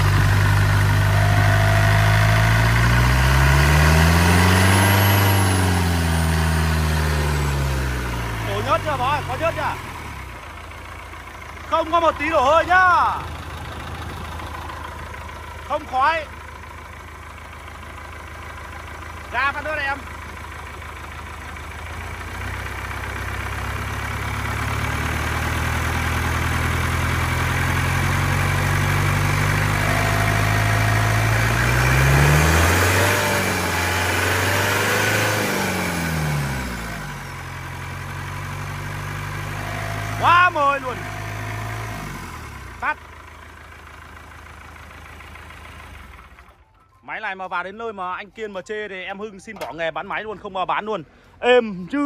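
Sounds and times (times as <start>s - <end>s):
diesel engine revving: 0.0s - 46.6s.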